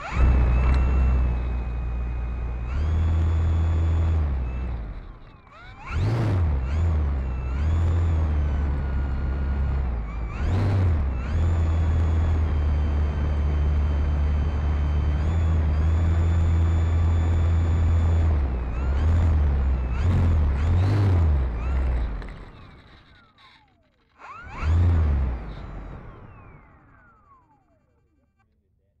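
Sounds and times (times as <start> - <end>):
electric motor and propeller whining: 0.0 - 28.2.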